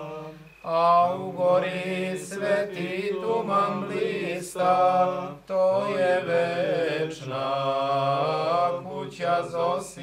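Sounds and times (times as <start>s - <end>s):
men singing a slow chant: 0.0s - 10.0s.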